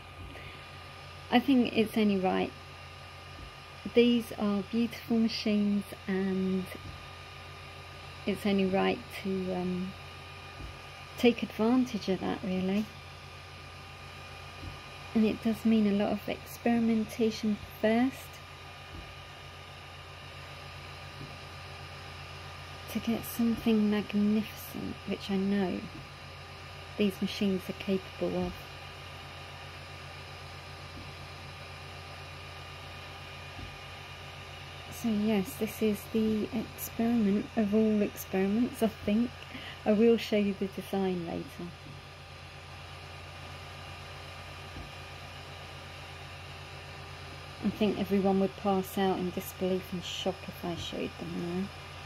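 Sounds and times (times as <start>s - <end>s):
faint steady whine: 0.0s - 52.0s
fan noise: 0.0s - 52.0s
printer motors humming: 0.0s - 52.0s.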